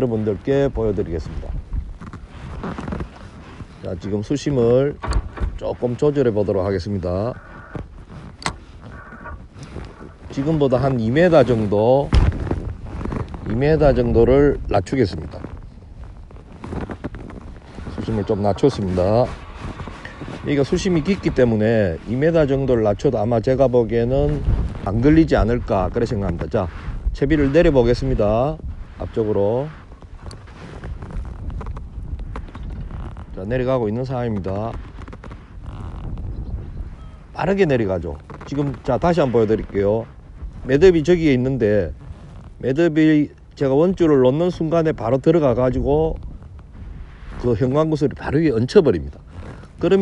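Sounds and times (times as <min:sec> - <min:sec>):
wind buffeting microphone: 0:00.0 - 0:50.0
low steady rumble: 0:03.9 - 0:32.3.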